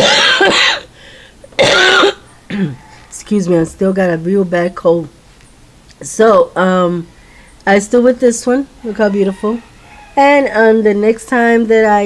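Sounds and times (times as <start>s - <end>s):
person coughing: 0.0s - 0.9s, 1.6s - 2.8s.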